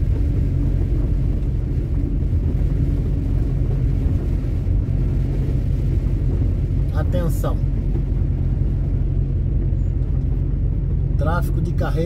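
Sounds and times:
road noise: 0:00.0 - 0:12.0
truck diesel engine rumble: 0:00.0 - 0:12.0.

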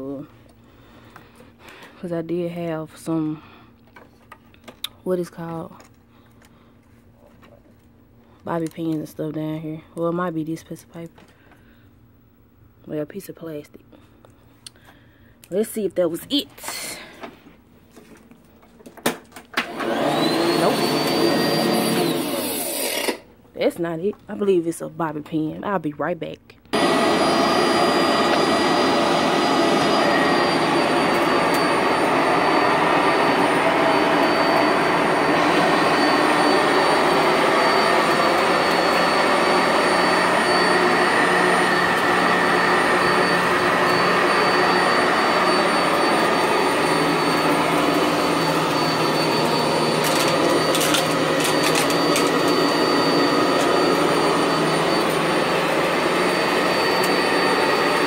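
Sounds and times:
vacuum cleaner running over carpet: 0:19.6 - 0:23.2, 0:26.7 - 0:58.0.

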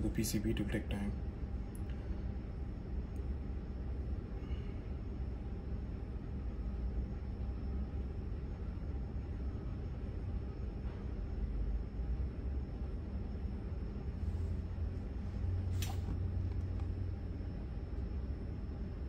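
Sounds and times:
faint high-pitched whine: 0:00.0 - 0:19.0
low background rumble: 0:00.0 - 0:19.0.

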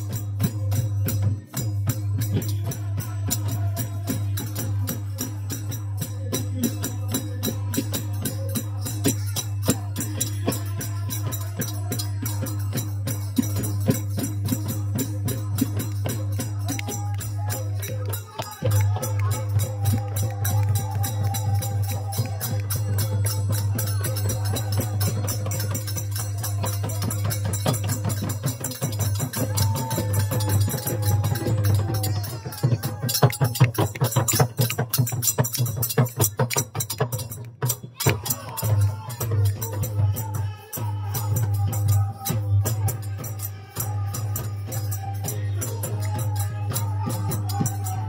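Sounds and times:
hand drum beat: 0:00.0 - 0:48.0
metal hand cymbals: 0:00.0 - 0:48.0
voices singing: 0:00.0 - 0:48.0.

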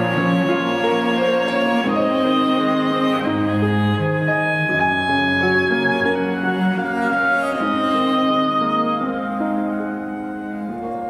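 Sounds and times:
cello: 0:00.0 - 0:11.0
oboe: 0:00.0 - 0:11.0
piano: 0:00.0 - 0:11.0.

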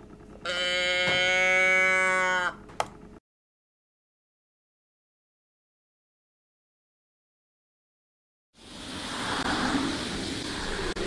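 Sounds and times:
toy cow moo: 0:00.4 - 0:02.6.

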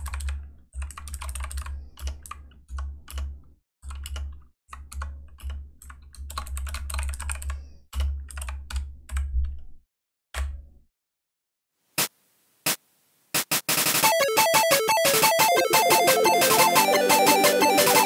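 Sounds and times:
typing on computer keyboard: 0:00.0 - 0:09.6
upbeat electronic game music: 0:13.4 - 0:18.0.

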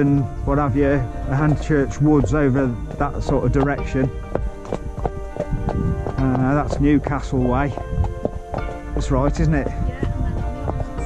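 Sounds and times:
background music with held notes: 0:00.0 - 0:11.0
horse hooves clip-clopping on dirt: 0:00.0 - 0:11.0.

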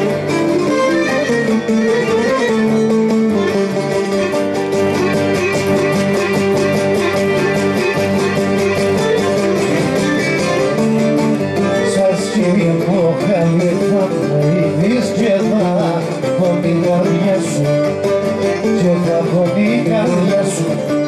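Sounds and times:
ornamented melody line: 0:00.0 - 0:21.0
plucked string accompaniment: 0:00.0 - 0:21.0.

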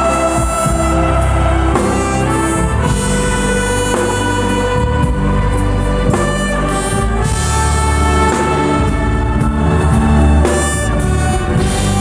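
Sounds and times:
live band sustained chords: 0:00.0 - 0:12.0.

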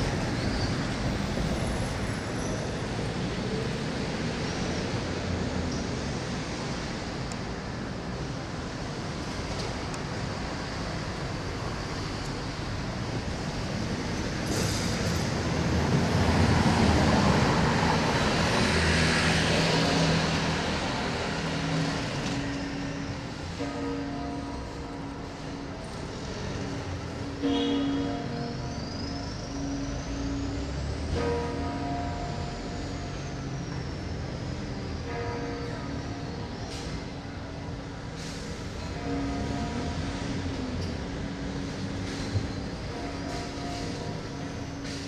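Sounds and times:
light street traffic: 0:00.0 - 0:45.0
bells ringing: 0:21.7 - 0:36.6.

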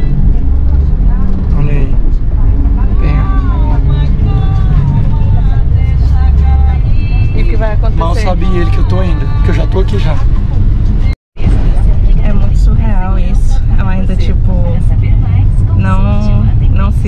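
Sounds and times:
van engine rumble and road noise: 0:00.0 - 0:17.0.

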